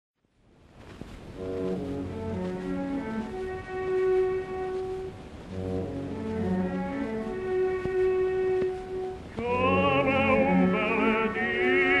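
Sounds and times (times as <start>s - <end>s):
record surface hiss: 0.2s - 12.0s
orchestra held chords: 1.3s - 12.0s.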